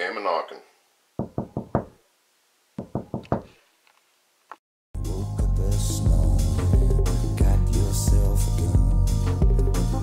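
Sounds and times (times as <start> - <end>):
knocking on a door: 1.2 - 2.0, 2.8 - 3.5.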